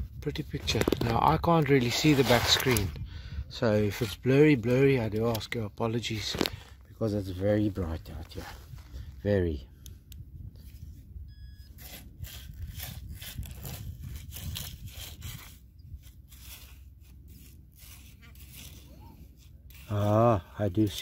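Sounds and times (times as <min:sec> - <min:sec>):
low steady rumble: 0:00.0 - 0:21.0
hands scraping through sand and pebbles: 0:00.6 - 0:03.0, 0:11.8 - 0:21.0.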